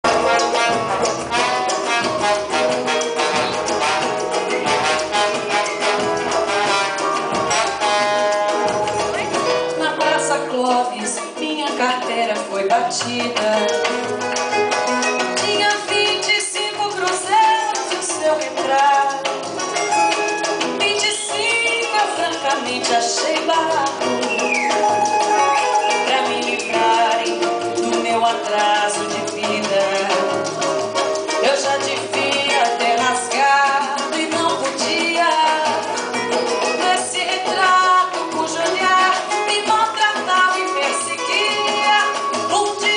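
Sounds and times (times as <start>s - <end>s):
live band playing samba: 0.0s - 42.9s
steady percussion: 0.0s - 42.9s
woman singing into a microphone: 9.1s - 14.0s, 15.4s - 19.4s, 20.8s - 24.2s, 25.6s - 30.6s, 31.3s - 42.9s.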